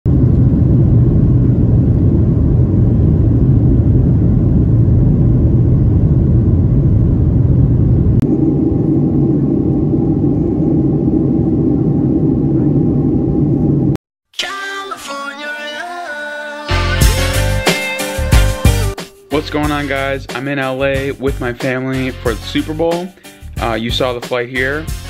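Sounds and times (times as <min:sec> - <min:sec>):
jet engine drone: 0:00.1 - 0:14.0
jet engine rumble: 0:00.1 - 0:14.0
steady engine whine: 0:00.1 - 0:14.0.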